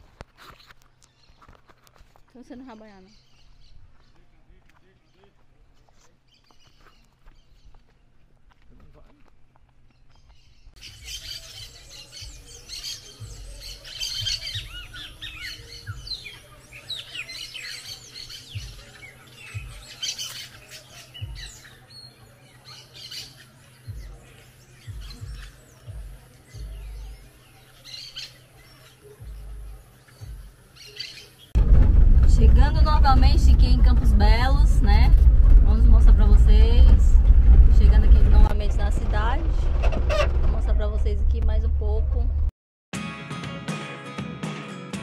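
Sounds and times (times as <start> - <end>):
birds chirping and squawking: 9.9 - 31.6, 33.3 - 41.1
low rumble: 31.6 - 42.5.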